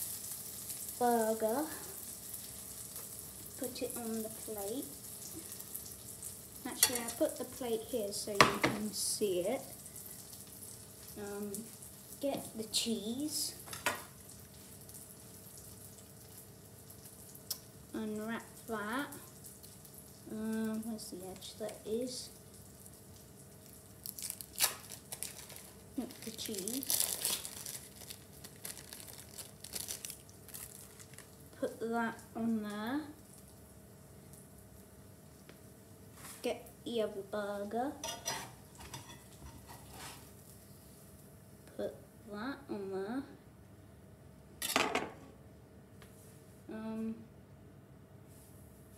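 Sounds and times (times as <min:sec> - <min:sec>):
oil sizzling in frying pan: 0:00.0 - 0:41.7
metal spatula scraping frying pan: 0:38.0 - 0:40.3.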